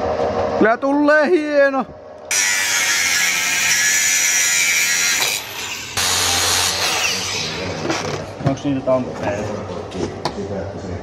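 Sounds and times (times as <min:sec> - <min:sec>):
power tool grinding metal: 0:02.3 - 0:08.3.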